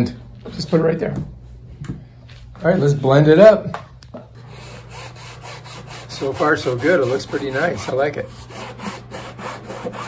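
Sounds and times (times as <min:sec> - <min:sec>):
cloth rag rubbing fabric: 0:04.5 - 0:09.6.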